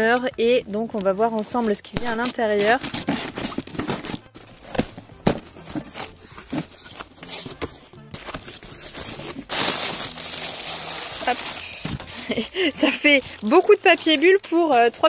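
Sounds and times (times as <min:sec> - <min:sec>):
bubble wrap crinkling: 0:01.0 - 0:15.0
tape tearing off cardboard: 0:02.1 - 0:12.4.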